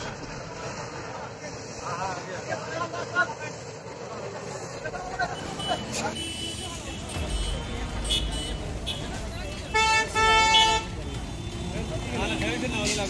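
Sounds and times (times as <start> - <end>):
people's voices: 0.0 - 13.0
vehicle horn honking: 9.7 - 11.5.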